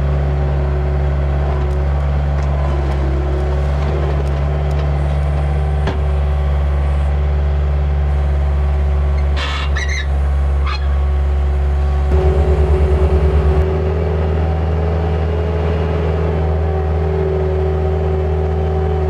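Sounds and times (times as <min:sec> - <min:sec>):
diesel engine running: 0:00.0 - 0:19.0
short high squeaks: 0:09.2 - 0:11.0
throbbing pulse: 0:10.1 - 0:18.5.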